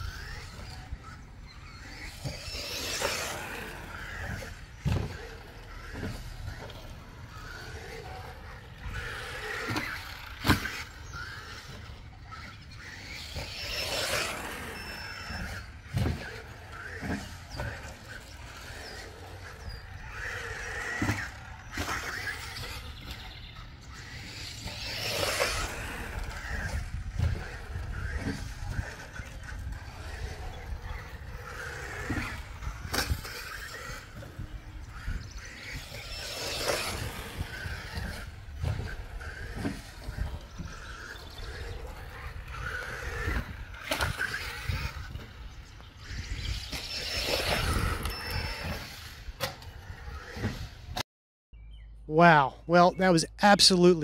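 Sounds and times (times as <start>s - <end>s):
electric motor whine: 0.0s - 51.0s
sharp knocks from landings: 0.1s - 45.5s.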